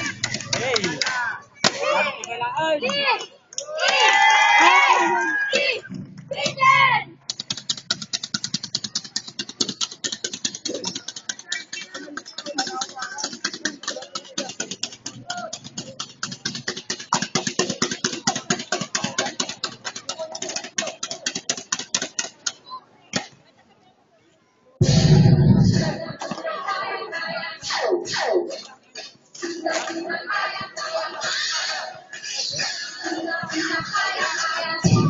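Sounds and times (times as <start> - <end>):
fast percussive beat: 7.4 - 22.4
faint voices: 17.5 - 35.0.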